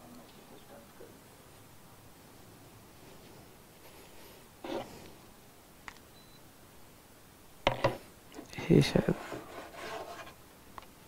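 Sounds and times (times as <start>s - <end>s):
rubbing and scraping handling noise: 3.0s - 5.2s, 7.7s - 10.4s.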